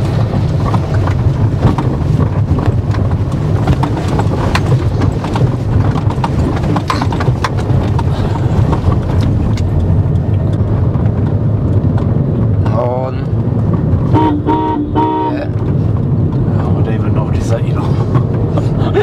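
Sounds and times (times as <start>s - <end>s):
knocks and rattles: 0.0s - 14.1s
car road rumble: 0.0s - 19.0s.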